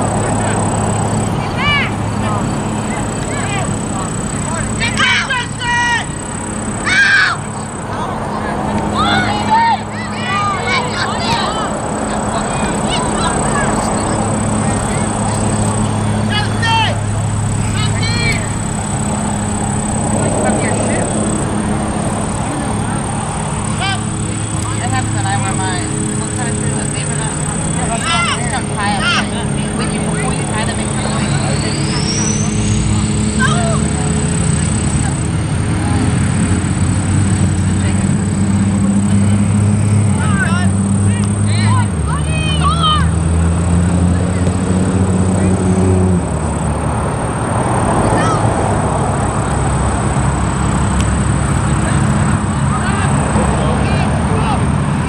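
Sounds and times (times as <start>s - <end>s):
distant shouts of players: 0.0s - 35.2s, 39.0s - 43.5s
low mechanical hum: 0.0s - 47.4s.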